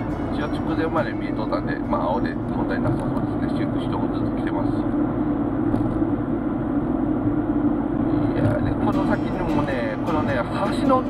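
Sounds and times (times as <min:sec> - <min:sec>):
car cabin road and engine drone: 0:00.0 - 0:11.0
speech: 0:00.4 - 0:04.8, 0:08.3 - 0:11.0.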